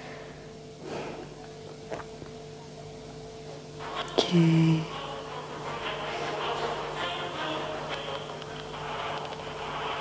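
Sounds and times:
faint breath: 0.0 - 1.4
low electrical hum: 0.0 - 10.0.

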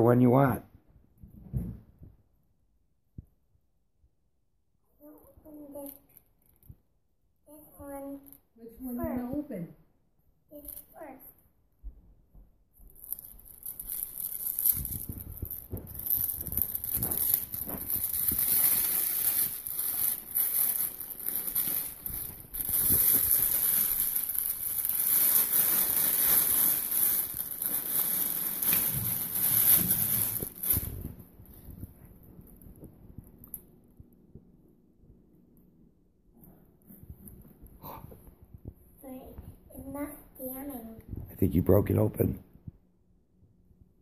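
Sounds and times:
plastic wrap crinkling and tearing: 12.8 - 31.9.

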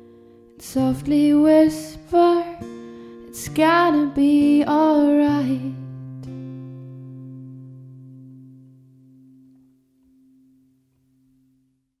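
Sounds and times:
acoustic guitar chord ringing: 0.0 - 11.9.

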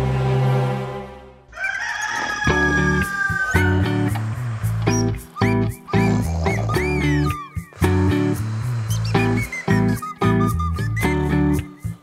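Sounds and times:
music: 0.0 - 1.5, 2.4 - 12.0
rooster crowing: 1.5 - 3.9.

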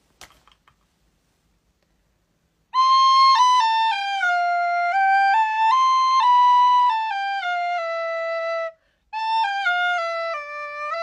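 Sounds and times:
recorder playing a steady note: 2.7 - 11.0.

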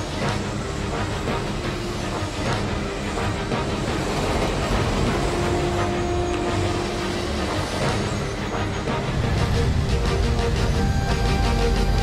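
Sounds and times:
background music: 0.0 - 12.0
subway train running: 0.0 - 12.0.

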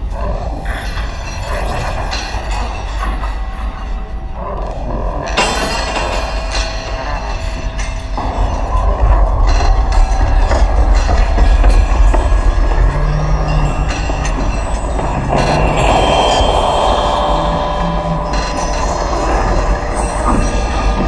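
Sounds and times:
deep low drone: 0.0 - 21.0
dense rumbling noise texture: 6.0 - 21.0
harsh hissing layer: 8.2 - 21.0.

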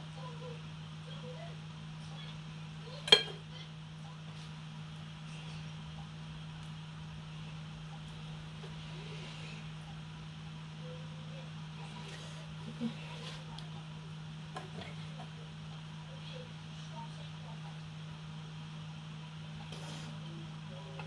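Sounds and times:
steady low hum: 0.0 - 21.0
kitchenware clinking: 3.0 - 3.4.

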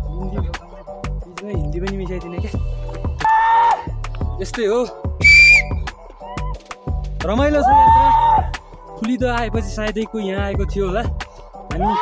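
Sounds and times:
short high whistle: 5.2 - 5.8.

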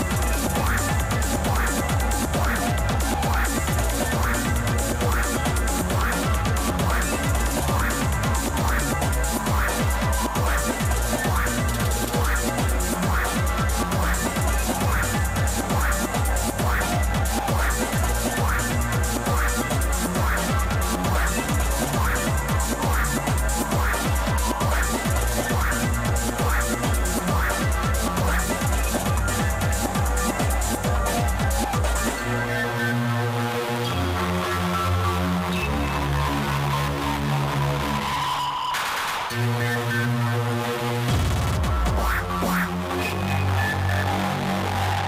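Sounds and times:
techno kick drum: 0.0 - 32.6, 41.1 - 45.0
electronic dance music: 0.0 - 45.0.

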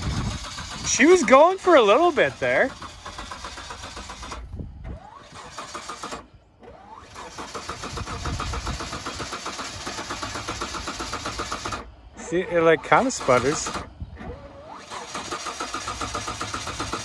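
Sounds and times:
engine cranking and sputtering: 0.0 - 17.0.

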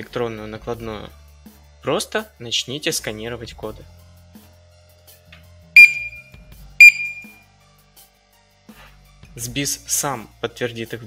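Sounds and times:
faint background music: 0.0 - 6.2, 6.8 - 11.0
barcode scanner beeps: 5.8 - 6.2, 6.8 - 7.3.

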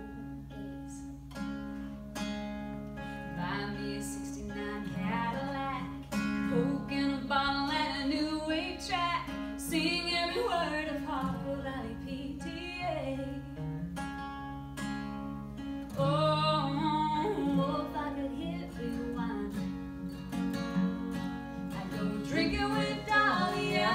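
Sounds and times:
acoustic guitars strumming: 0.0 - 23.9
woman singing: 3.3 - 13.6, 15.9 - 19.8, 21.6 - 23.9.

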